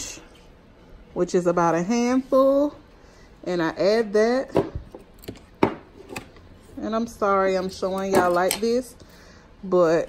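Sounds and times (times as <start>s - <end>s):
woman speaking: 1.1s - 4.8s, 6.8s - 9.0s, 9.6s - 10.0s.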